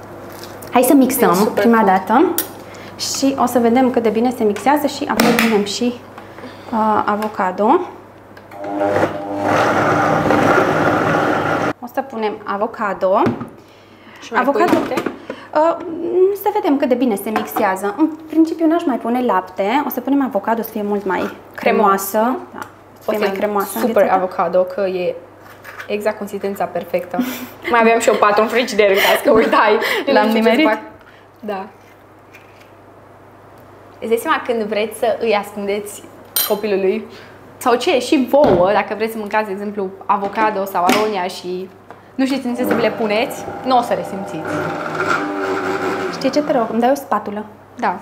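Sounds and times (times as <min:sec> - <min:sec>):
blender motor running: 0:08.6 - 0:11.7, 0:42.6 - 0:46.6.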